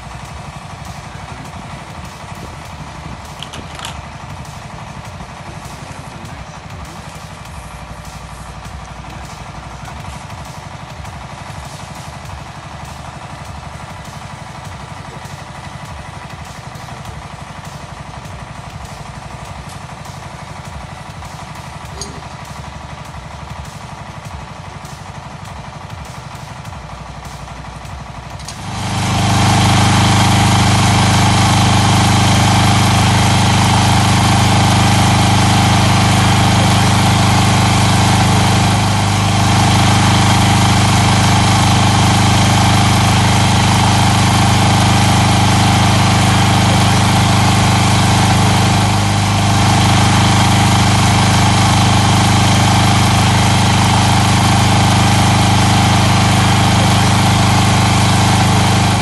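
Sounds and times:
petrol generator running: 0.0s - 59.0s.

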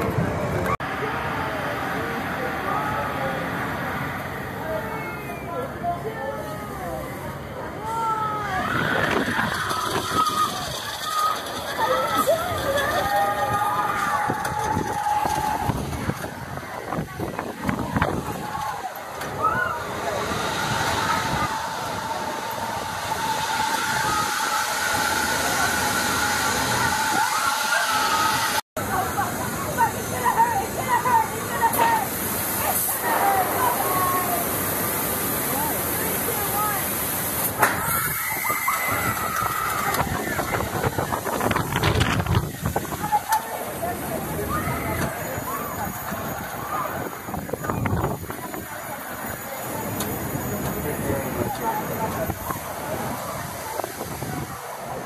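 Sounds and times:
indistinct voices: 0.0s - 55.0s
wind on microphone: 12.3s - 18.7s, 38.4s - 43.2s, 44.9s - 48.8s, 52.2s - 55.0s.

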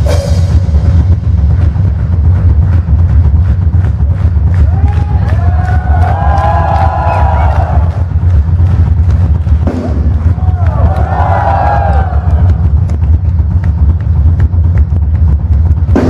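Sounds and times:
drum and cymbal hits: 0.0s - 16.0s
fast double bass drumming: 0.0s - 16.0s
crowd shouting and cheering: 2.3s - 16.0s.

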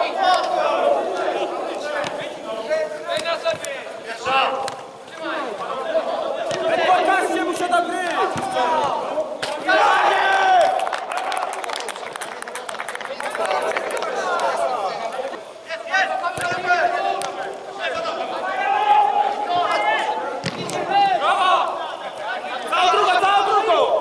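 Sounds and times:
footballers shouting: 0.0s - 24.0s.

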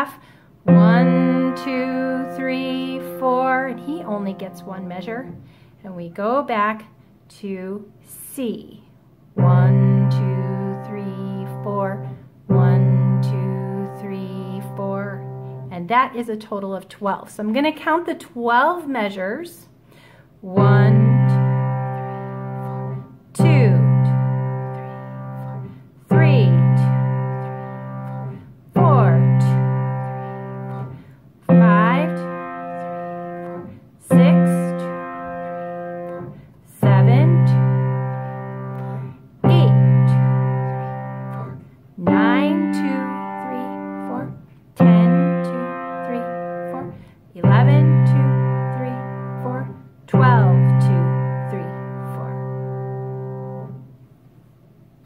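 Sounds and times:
piano bass fifths: 0.7s - 5.4s, 20.6s - 46.9s.

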